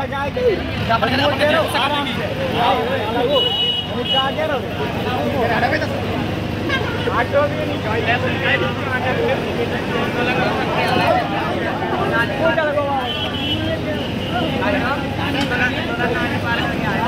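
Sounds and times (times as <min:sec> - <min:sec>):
crowd voices: 0:00.0 - 0:17.0
diesel engine running: 0:03.9 - 0:17.0.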